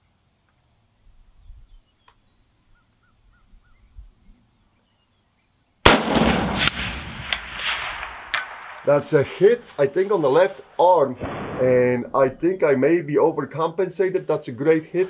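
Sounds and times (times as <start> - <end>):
rifle shot with rolling echo: 5.8 - 9.6, 11.2 - 12.2
bullet striking steel plate: 5.9 - 8.8.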